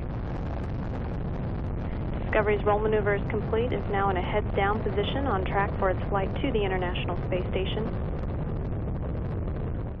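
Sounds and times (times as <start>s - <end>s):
rocket engines deep rumble: 0.0s - 10.0s.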